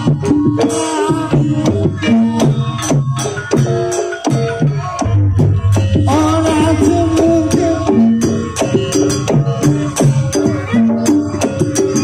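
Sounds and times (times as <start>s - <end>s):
ringing struck metal tones: 4.6s - 10.4s
hand drum strokes: 5.0s - 12.0s.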